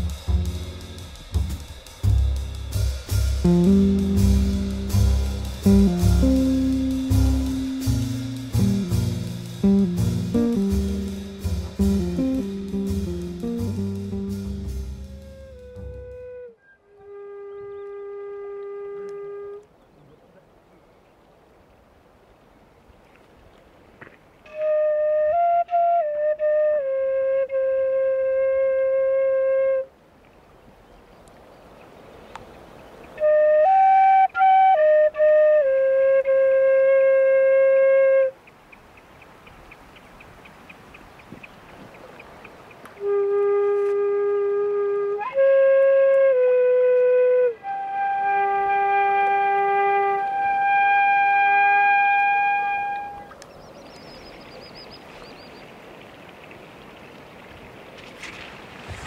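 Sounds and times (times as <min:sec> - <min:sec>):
wooden flute playing: 0:00.0 - 0:19.8, 0:24.5 - 0:30.0, 0:33.2 - 0:38.4, 0:43.0 - 0:54.1.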